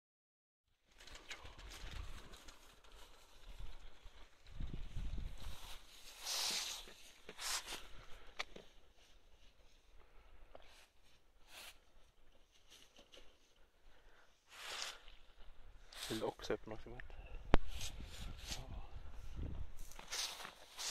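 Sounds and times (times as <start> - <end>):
hissing rustle of leaves: 1.1 - 8.2, 14.5 - 15.1, 15.8 - 16.4, 19.8 - 20.9
footsteps crunching dry leaves: 19.8 - 20.9.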